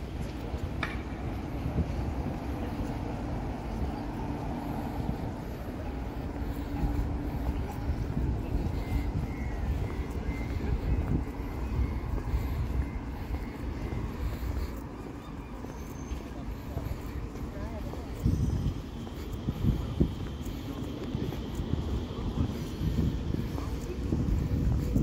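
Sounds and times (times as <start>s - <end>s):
low street rumble: 0.0s - 25.0s.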